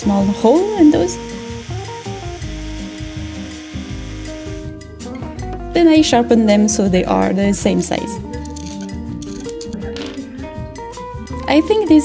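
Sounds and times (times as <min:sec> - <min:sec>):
electric drill boring wood: 0:00.0 - 0:04.7
background music: 0:00.0 - 0:12.0.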